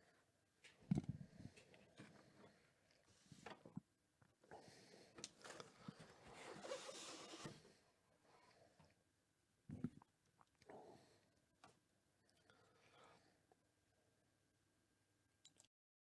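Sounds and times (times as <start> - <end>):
cardboard and packaging rustling: 5.4 - 7.6.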